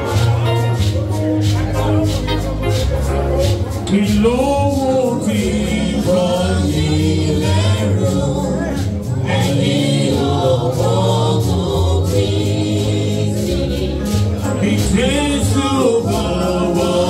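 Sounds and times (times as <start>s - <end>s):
gospel choir singing: 0.0s - 17.0s
sustained bass accompaniment: 0.0s - 17.0s.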